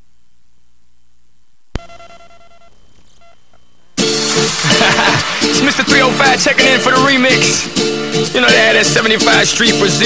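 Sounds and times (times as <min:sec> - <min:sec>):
low hum and hiss: 0:00.0 - 0:05.5
electronic beep: 0:01.8 - 0:04.0.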